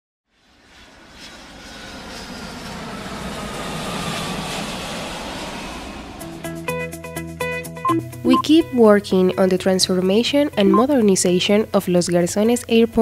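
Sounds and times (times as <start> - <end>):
airplane engine passing: 0.3 - 7.8.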